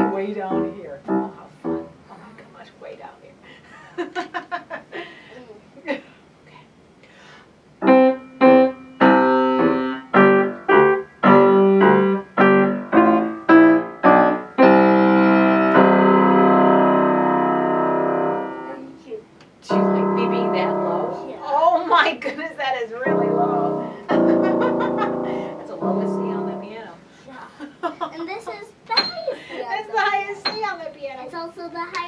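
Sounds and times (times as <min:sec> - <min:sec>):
piano duet: 0:00.0 - 0:02.0, 0:07.8 - 0:22.0, 0:23.0 - 0:27.2
laughter: 0:03.7 - 0:05.2, 0:24.1 - 0:25.5, 0:27.5 - 0:30.2.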